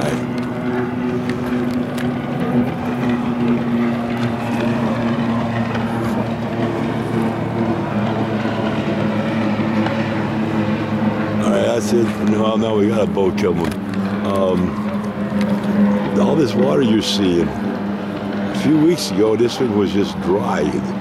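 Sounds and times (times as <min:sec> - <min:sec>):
engine running: 0:00.0 - 0:21.0.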